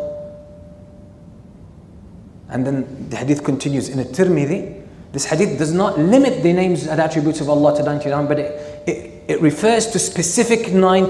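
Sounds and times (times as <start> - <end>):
faint ringing tone: 0.0 - 1.8, 7.2 - 9.9.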